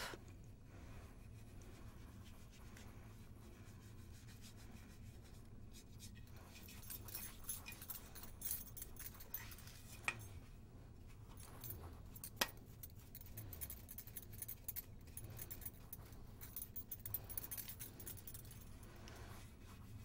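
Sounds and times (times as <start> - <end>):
makeup brush rustling: 1.1 - 20.0.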